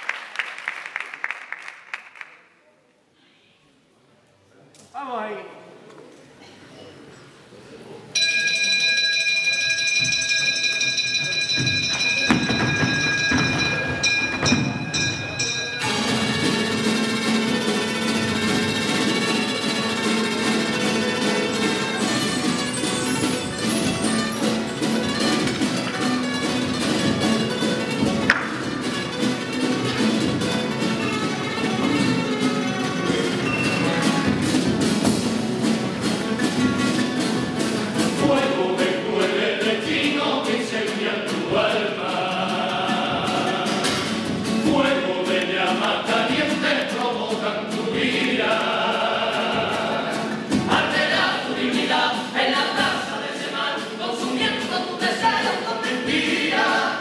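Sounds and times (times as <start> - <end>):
ensemble percussive rhythm: 9.8 - 52.1.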